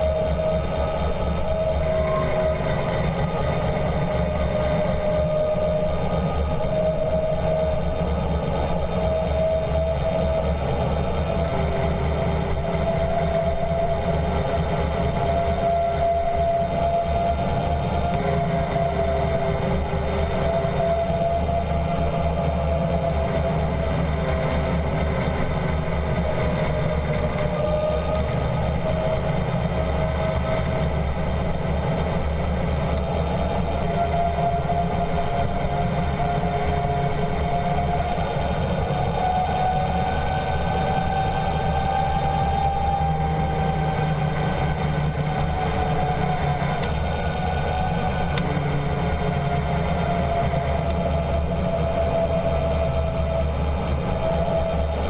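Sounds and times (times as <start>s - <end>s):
bicycle tyres rushing on asphalt: 0.0s - 55.0s
wind: 0.0s - 55.0s
bicycle brakes whining: 18.1s - 19.8s, 20.4s - 23.7s.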